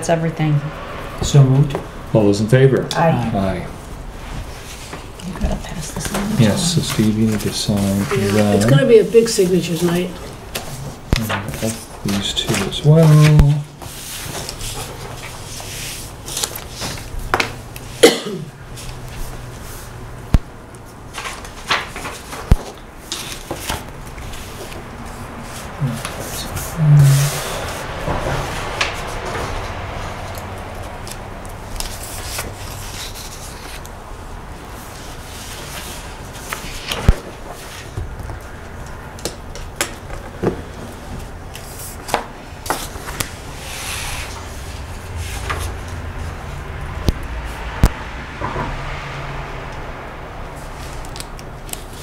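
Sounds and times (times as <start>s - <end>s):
low room hum: 0.0s - 52.0s
pens scratching on paper: 4.4s - 17.5s, 20.8s - 34.0s
papers rustling: 5.9s - 17.8s, 18.7s - 46.0s.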